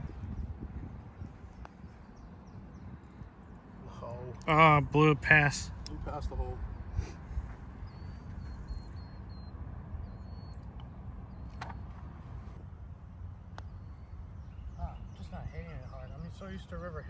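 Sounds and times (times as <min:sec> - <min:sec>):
wind rumbling on microphone: 0:00.0 - 0:04.4
bird chirping: 0:07.8 - 0:12.6, 0:13.4 - 0:17.0.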